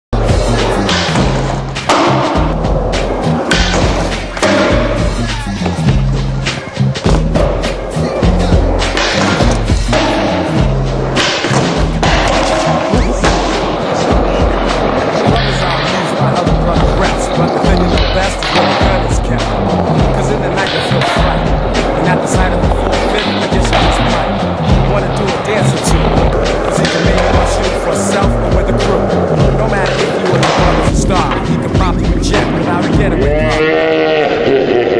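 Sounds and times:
music with bass and beat: 0.1s - 34.2s
skateboard wheels rolling: 0.2s - 34.8s
skateboard knocking and landing: 0.4s - 33.2s.

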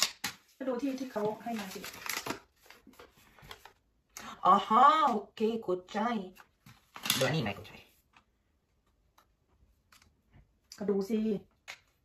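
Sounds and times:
plastic packaging rustling: 0.0s - 3.8s
person talking: 0.6s - 2.0s, 7.0s - 8.0s.

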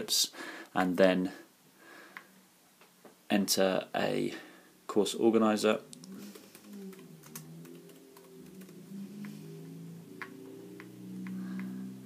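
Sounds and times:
faint low wavering tone: 5.7s - 12.0s
keyboard typing: 5.9s - 9.5s, 10.2s - 11.8s
mouse clicks: 10.2s - 11.8s.

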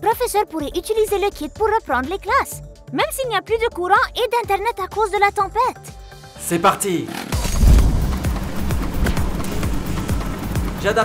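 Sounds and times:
background music: 0.0s - 11.0s
generator pull-start: 7.0s - 10.5s
generator running: 7.3s - 11.0s.

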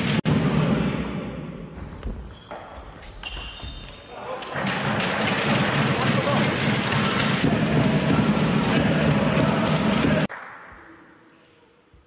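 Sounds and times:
spectators applauding: 4.5s - 10.6s.

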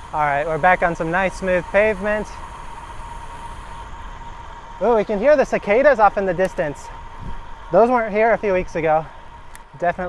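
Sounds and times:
wind rumble: 0.0s - 9.6s
bike tyres on pavement: 0.0s - 10.0s
distant cicadas droning: 0.0s - 10.0s.

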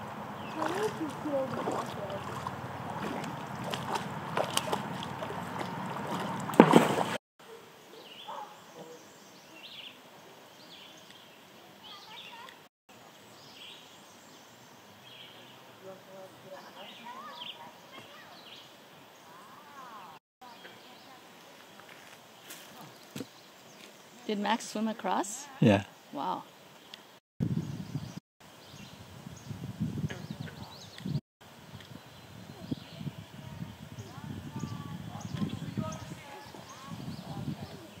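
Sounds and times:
distant voices: 0.0s - 6.7s
background voices talking: 24.2s - 25.9s.

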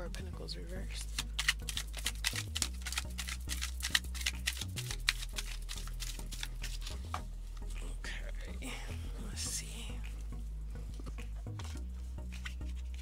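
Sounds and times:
background music of low notes: 0.0s - 13.0s
cards being shuffled: 0.8s - 7.8s, 10.9s - 13.0s.

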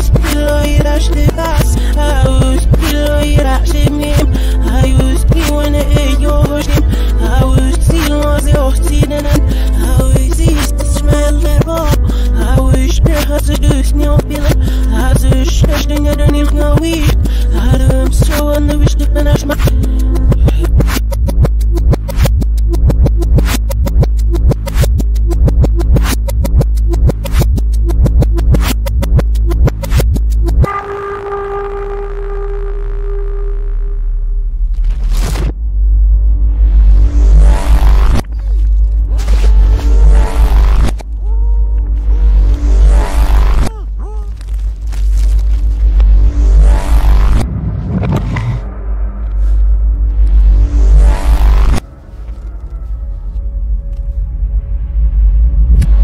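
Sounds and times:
electronic music with heavy bass: 0.0s - 52.8s
rising synth sweeps: 45.7s - 56.0s.

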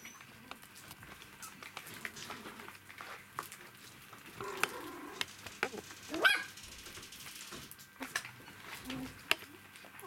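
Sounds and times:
puppy yelping: 6.1s - 6.5s.

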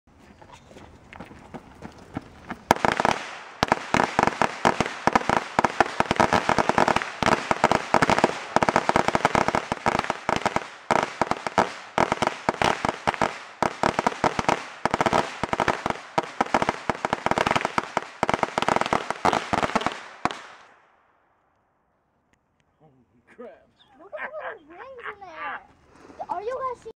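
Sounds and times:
string of firecrackers cracking: 1.5s - 20.9s.

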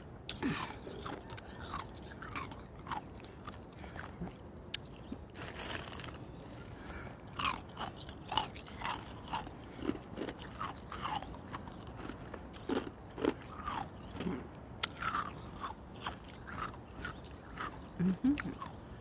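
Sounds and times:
ice being chewed: 0.3s - 6.7s, 7.3s - 18.7s.

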